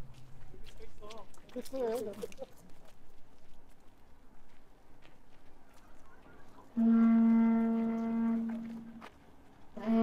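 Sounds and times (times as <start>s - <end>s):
horn long steady note: 6.7s - 9.1s, 9.7s - 10.0s.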